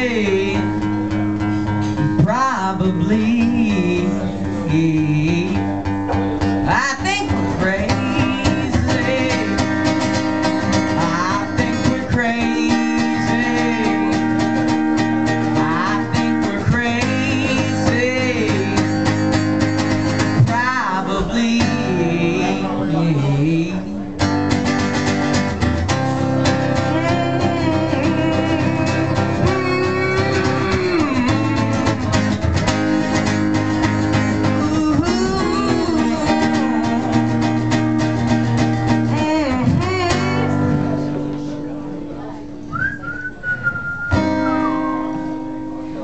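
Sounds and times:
young man singing: 0.0s - 24.4s, 26.3s - 41.3s
acoustic guitar strumming: 0.0s - 46.0s
short high whistle: 42.7s - 45.2s.

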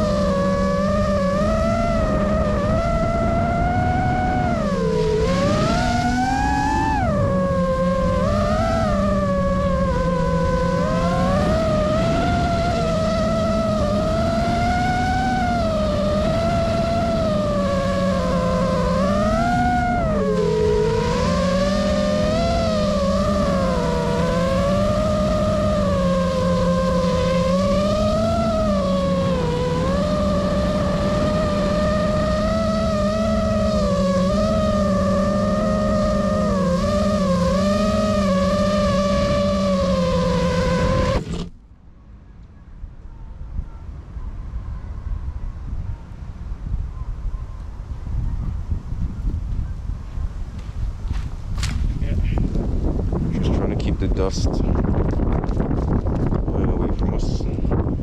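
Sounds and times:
quadcopter motors whining: 0.0s - 41.7s, 42.4s - 58.0s.

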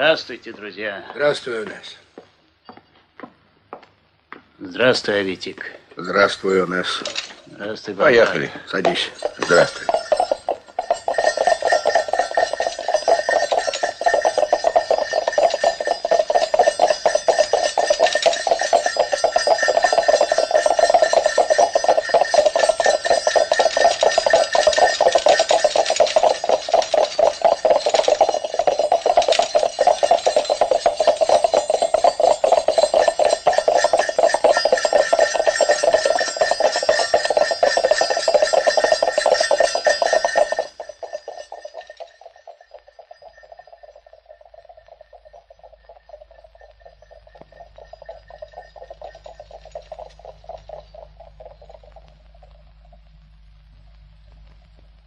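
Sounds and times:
small bell ringing rapidly: 6.0s - 53.0s.

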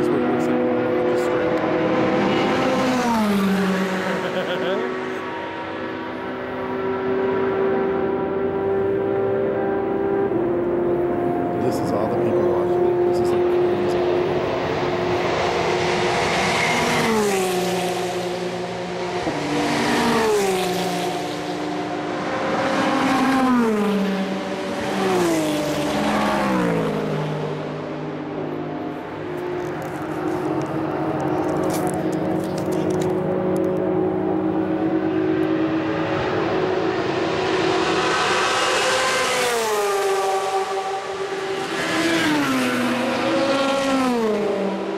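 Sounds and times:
race car engines at high revs: 0.0s - 44.9s
race cars passing by: 0.0s - 44.9s.

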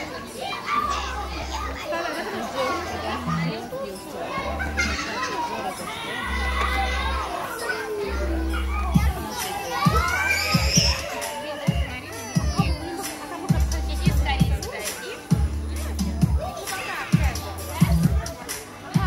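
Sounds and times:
children chattering and laughing: 0.0s - 19.0s.

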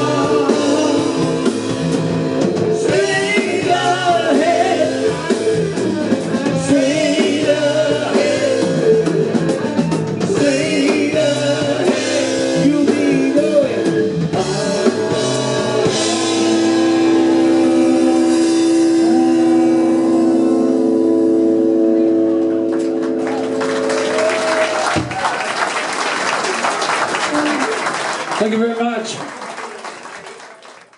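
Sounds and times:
live rock band with saxophones: 0.0s - 25.4s
audience applauding and cheering: 22.4s - 30.9s.

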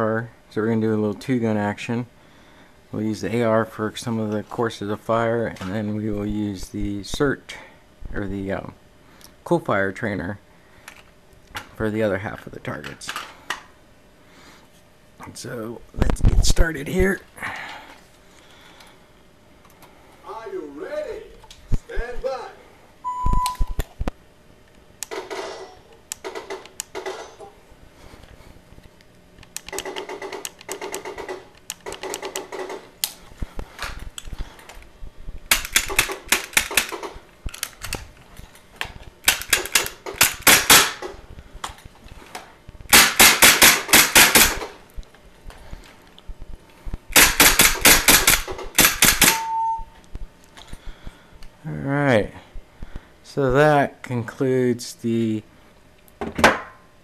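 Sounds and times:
short steady beep: 23.0s - 23.8s, 49.3s - 50.0s
rapid bursts of pistol pops: 35.4s - 38.0s, 42.9s - 44.8s, 47.0s - 49.4s
ringing note: 49.4s - 50.0s.

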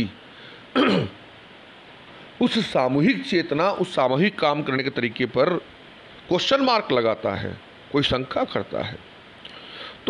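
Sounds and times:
low room noise: 0.0s - 10.0s
man clearing his throat: 0.8s - 1.2s.

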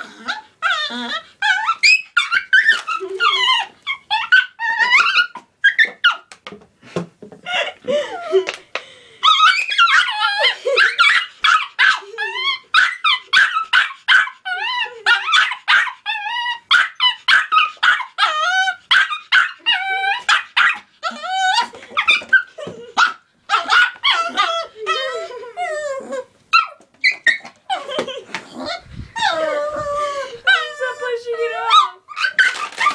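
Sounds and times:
small dog barking and yipping: 1.5s - 6.2s, 9.3s - 25.2s, 31.6s - 32.9s.

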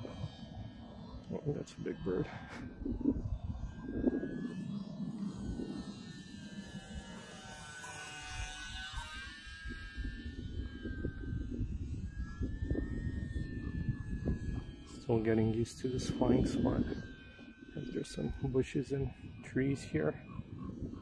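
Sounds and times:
model plane motor whining: 0.0s - 21.0s
wind rumble on microphone: 0.0s - 21.0s.

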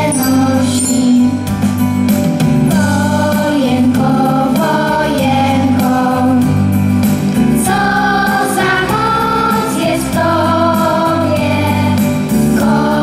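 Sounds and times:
children singing into microphones: 0.0s - 1.5s, 2.6s - 6.8s, 7.5s - 13.0s
keyboard accompaniment: 0.0s - 13.0s
choir singing: 2.7s - 6.5s, 7.6s - 13.0s.

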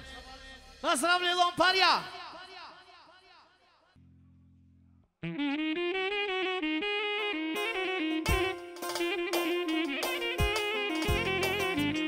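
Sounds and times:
saxophone-like solo melody: 5.2s - 12.0s.

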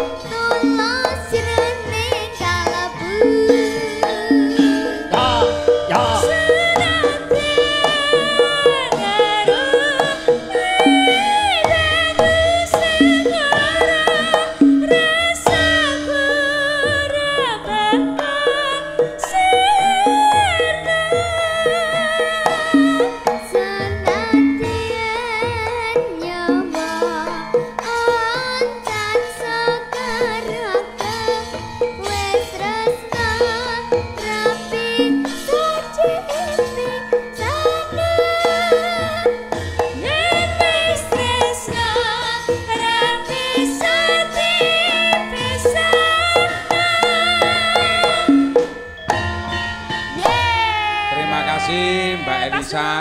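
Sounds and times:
girl singing into microphone: 0.0s - 48.7s, 50.1s - 53.0s
drum strokes: 0.0s - 53.0s
gamelan ensemble: 0.0s - 53.0s
ringing metal tones: 0.0s - 53.0s.

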